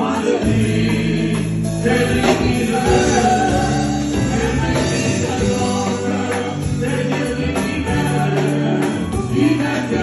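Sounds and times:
band with electric bass: 0.0s - 10.0s
gospel voices singing: 0.0s - 10.0s.

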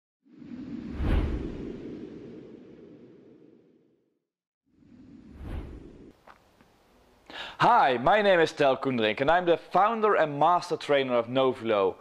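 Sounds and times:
whoosh with deep boom: 0.5s - 2.8s, 5.2s - 6.2s.

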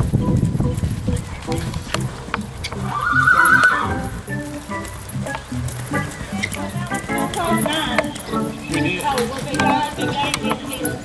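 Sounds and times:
background music: 0.0s - 11.0s
horse whinnying: 2.7s - 4.1s.

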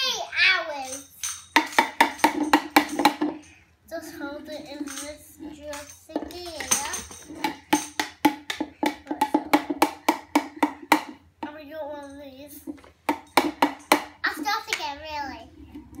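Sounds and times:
young child's voice: 0.0s - 1.2s, 3.9s - 7.2s, 14.2s - 15.8s.

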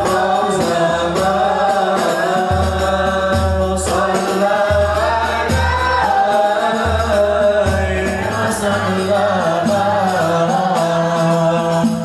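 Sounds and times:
boy singing into microphone: 0.0s - 12.0s.

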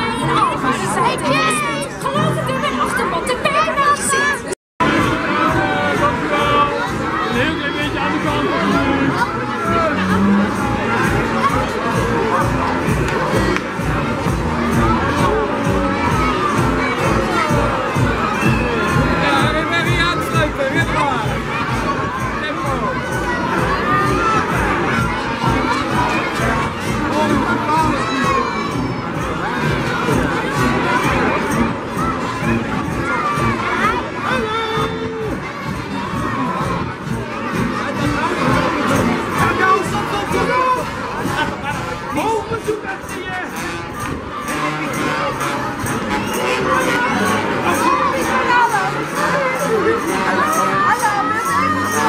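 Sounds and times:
children shouting and cheering: 0.0s - 52.0s.

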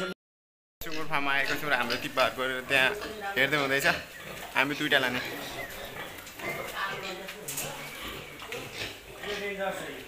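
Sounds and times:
pigs squealing and grunting: 0.8s - 10.0s.

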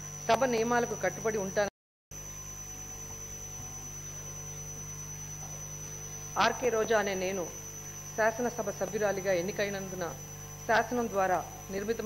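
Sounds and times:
electrical hum: 0.0s - 12.0s
woman speaking into a microphone: 0.3s - 1.7s, 6.4s - 7.6s, 8.2s - 12.0s.

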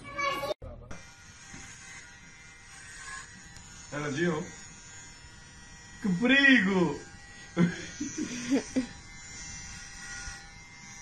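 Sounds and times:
electric hair clippers buzzing: 0.9s - 11.0s.

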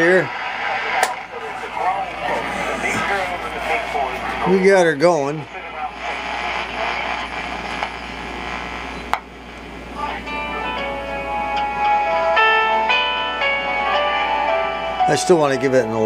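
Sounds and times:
music from radio speaker: 0.0s - 9.0s, 9.9s - 15.8s
radio static hiss: 0.0s - 11.3s.

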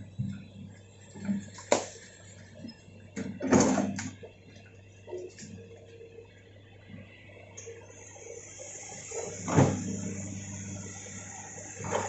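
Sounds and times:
excavator diesel engine humming: 4.1s - 12.0s.

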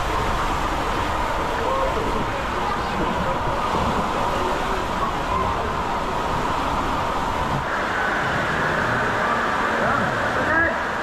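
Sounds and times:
rushing churning water: 0.0s - 11.0s.

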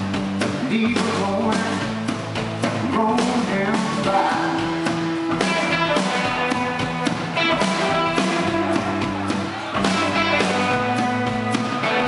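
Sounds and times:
live rock band playing: 0.0s - 12.0s
drum hits: 4.7s - 12.0s.

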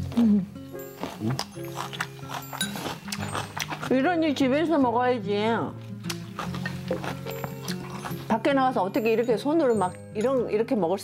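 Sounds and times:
crunchy chewing: 0.0s - 4.1s, 5.8s - 8.5s
background music: 0.0s - 11.0s.

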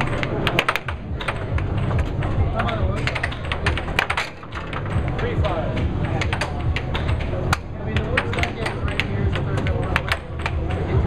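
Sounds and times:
air hockey puck clacking: 0.0s - 11.0s.

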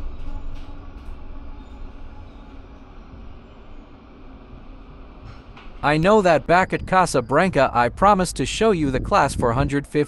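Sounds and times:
diesel train engine rumble: 0.0s - 10.0s.

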